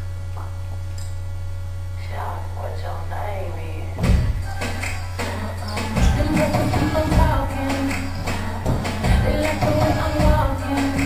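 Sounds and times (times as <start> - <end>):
low electrical hum: 0.0 - 11.0
music with heavy bass hit: 4.0 - 11.0.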